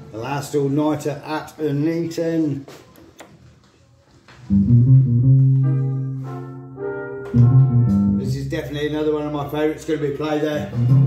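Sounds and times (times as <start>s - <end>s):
soul record with bass and guitar: 4.5s - 6.6s, 7.3s - 11.0s.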